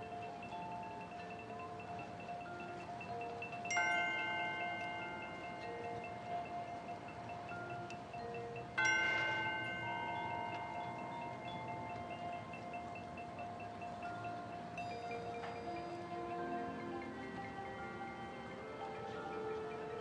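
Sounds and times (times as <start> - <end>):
mallet percussion and chimes: 0.0 - 20.0
ringing chords of bells: 0.0 - 20.0.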